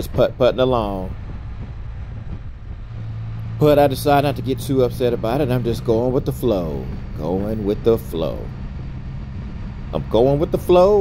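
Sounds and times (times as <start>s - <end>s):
three-cylinder engine running: 0.0s - 11.0s
wind and road noise: 0.0s - 11.0s.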